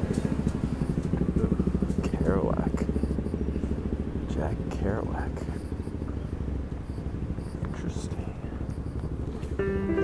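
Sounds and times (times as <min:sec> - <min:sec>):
truck engine idling: 0:00.0 - 0:10.0
voice: 0:01.4 - 0:03.0, 0:04.3 - 0:05.6, 0:07.6 - 0:08.7.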